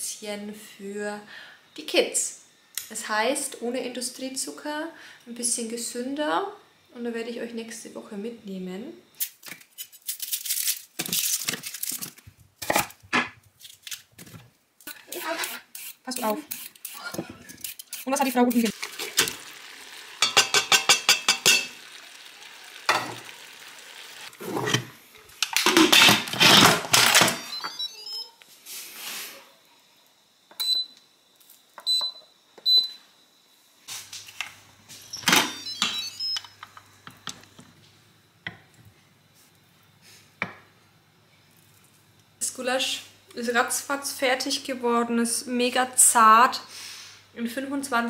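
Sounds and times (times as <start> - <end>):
short high beeps: 35.1 - 36.4.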